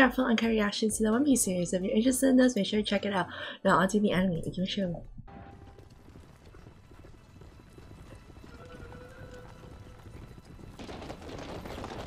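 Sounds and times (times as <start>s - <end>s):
horses' hooves galloping: 5.3s - 12.0s.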